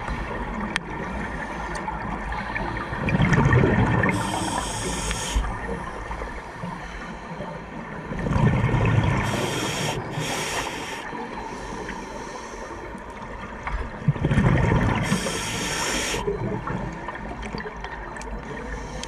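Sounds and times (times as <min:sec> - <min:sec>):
exhaled bubbles rumbling underwater: 0:00.0 - 0:19.0
regulator inhale hiss: 0:04.1 - 0:05.6, 0:09.2 - 0:12.9, 0:15.0 - 0:16.3, 0:18.7 - 0:19.0.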